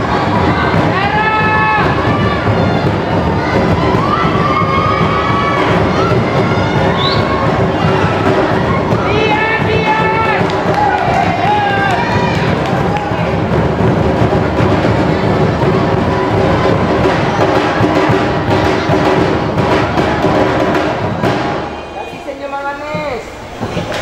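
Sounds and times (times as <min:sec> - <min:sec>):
drums beaten with sticks: 0:00.0 - 0:24.0.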